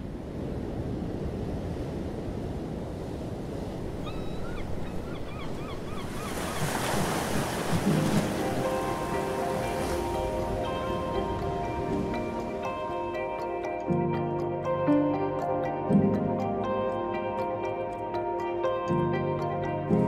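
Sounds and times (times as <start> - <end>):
ocean waves breaking: 0.0 - 20.0
soft music with held notes: 7.7 - 20.0.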